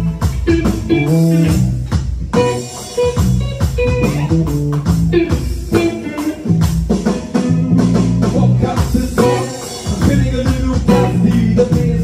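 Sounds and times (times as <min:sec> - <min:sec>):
bass guitar: 0:00.0 - 0:12.0
electric guitars: 0:00.0 - 0:12.0
electronic drum beat: 0:00.0 - 0:12.0.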